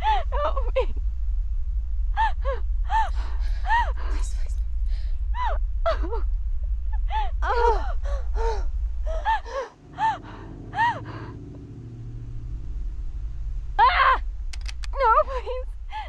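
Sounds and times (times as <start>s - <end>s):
woman sobbing: 0.0s - 1.0s, 2.2s - 4.4s, 5.4s - 6.3s, 7.0s - 11.4s, 13.8s - 14.2s, 15.0s - 16.0s
low drone: 0.0s - 16.0s
soft low hum: 0.0s - 16.0s.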